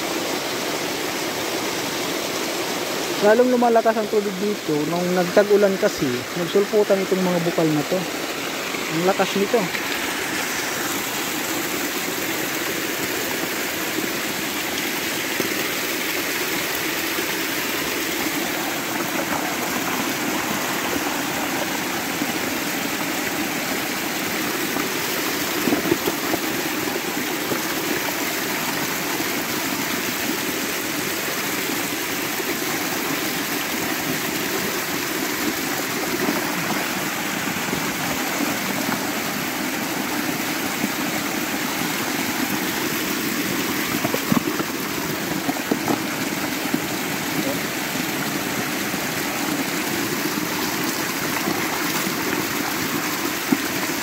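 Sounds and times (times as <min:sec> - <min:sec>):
spring water cascading over stones: 0:00.0 - 0:54.0.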